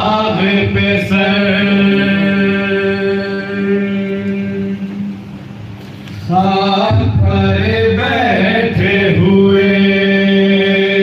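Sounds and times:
man singing lament into microphone: 0.0 - 5.2, 6.2 - 11.0.

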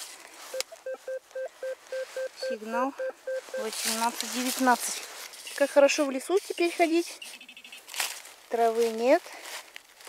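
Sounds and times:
metal detector beeping: 0.5 - 4.0, 6.4 - 7.9.

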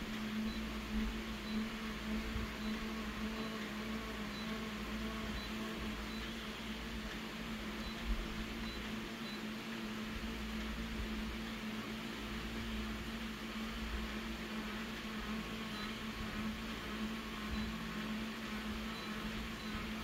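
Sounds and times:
copier fans humming: 0.0 - 20.0.

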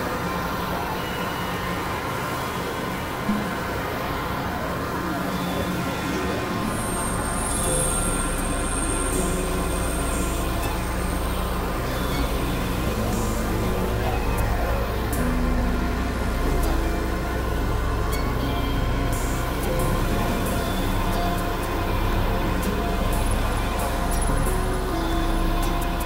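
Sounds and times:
synthesizer drone tones: 0.0 - 26.0
steady low hum: 3.0 - 26.0.

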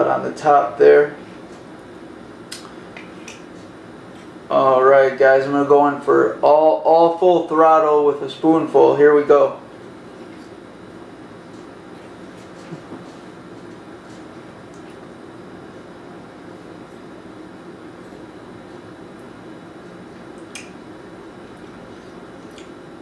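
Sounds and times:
room hum: 0.0 - 23.0.

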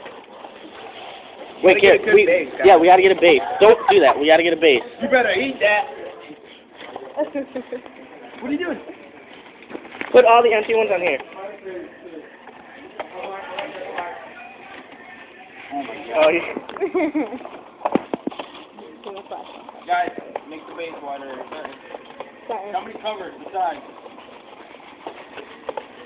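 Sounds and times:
indistinct background voices: 0.4 - 26.0
paper cartons being handled: 12.4 - 26.0.

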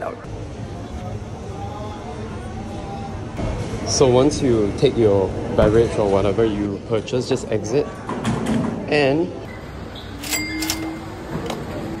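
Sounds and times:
gate clicks: 10.2 - 11.7.

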